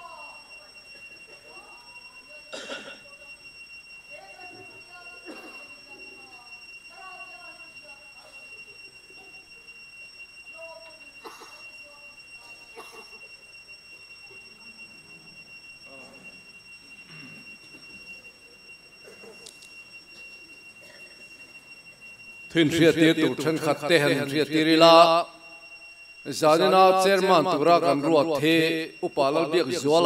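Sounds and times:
congregation praying aloud: 0.0s - 0.8s, 22.5s - 25.4s, 26.2s - 30.0s
steady high-pitched whine: 0.0s - 30.0s.

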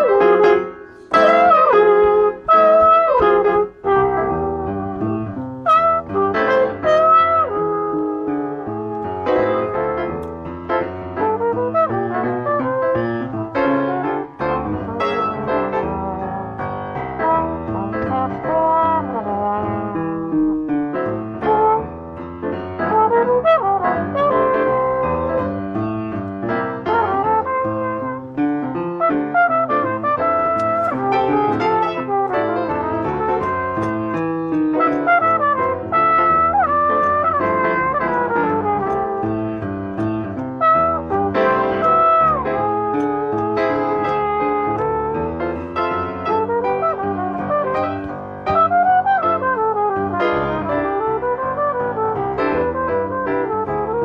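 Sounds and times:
piano comping chords: 0.0s - 54.0s
trumpet playing jazz: 0.0s - 54.0s.

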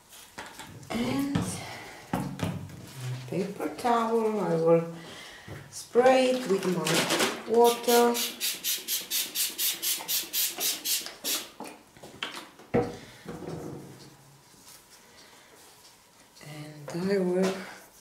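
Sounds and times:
spray bottle squirting: 7.6s - 11.6s.

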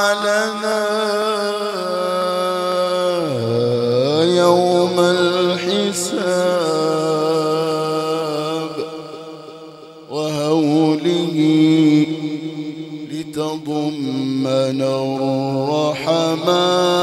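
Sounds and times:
man chanting solo: 0.0s - 9.2s, 10.1s - 17.0s.

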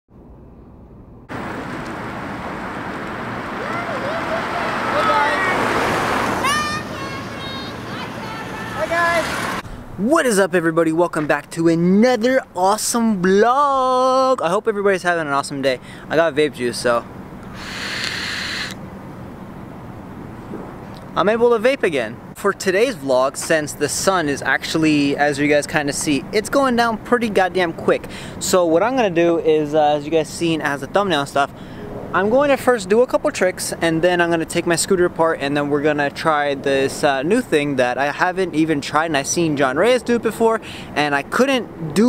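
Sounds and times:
scooter wheels rolling on asphalt: 1.3s - 9.6s
vape hissing: 17.5s - 18.8s.

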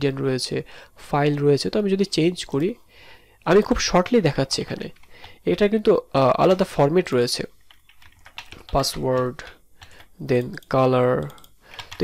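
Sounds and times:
man talking: 0.0s - 2.8s, 3.4s - 7.5s, 8.7s - 9.6s, 10.2s - 11.4s
computer keyboard typing: 4.7s - 5.5s, 7.6s - 12.0s.

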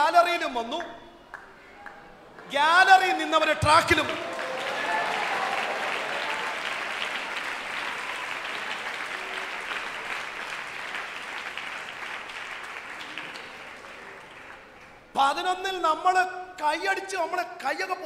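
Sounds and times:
congregation applauding: 1.2s - 15.5s.

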